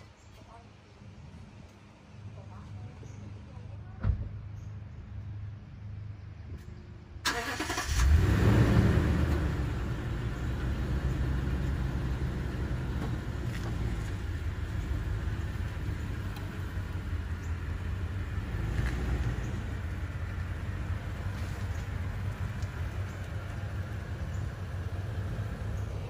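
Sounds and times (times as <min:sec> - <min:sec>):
engine starting and running: 0:07.2 - 0:26.0.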